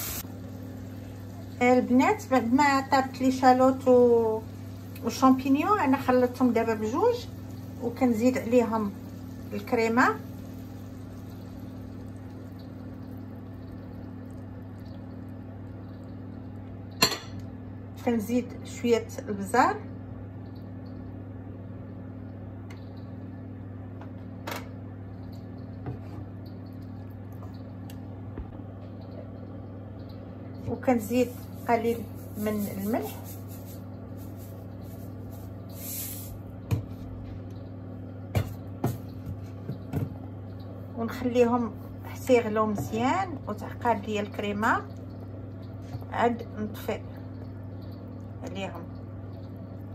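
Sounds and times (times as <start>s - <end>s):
steady low hum: 0.0s - 49.9s
faint even hiss: 31.0s - 36.4s.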